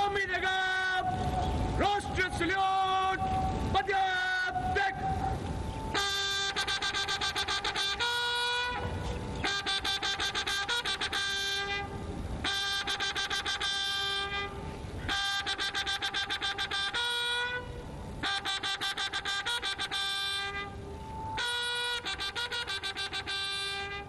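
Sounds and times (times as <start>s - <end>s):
fanfare trumpets: 3.8s - 24.0s.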